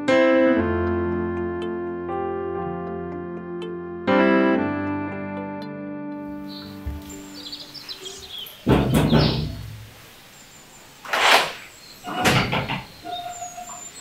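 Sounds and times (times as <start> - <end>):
piano chord: 0.0 - 8.6
birds chirping: 6.3 - 14.0.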